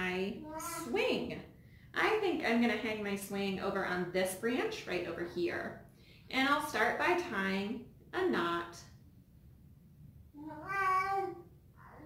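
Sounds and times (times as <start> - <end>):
baby whiny calls: 10.4 - 12.0.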